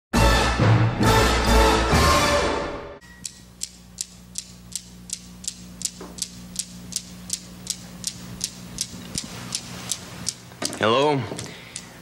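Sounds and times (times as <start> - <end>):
low steady hum: 3.0 - 12.0
clock ticking: 3.2 - 10.4.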